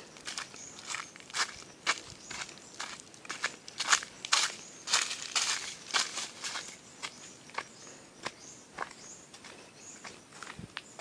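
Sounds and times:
footsteps crunching on dry leaves: 0.0 - 11.0.

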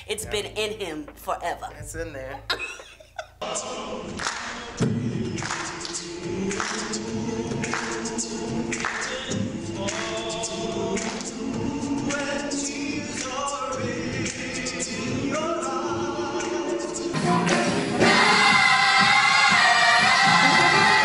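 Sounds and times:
gospel choir singing: 3.4 - 21.0
male choir singing in harmony: 3.4 - 21.0.

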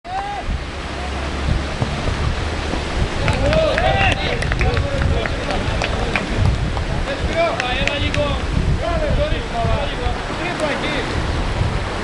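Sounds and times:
faint distant shouts: 0.1 - 1.7
wind buffeting microphone: 0.1 - 12.0.

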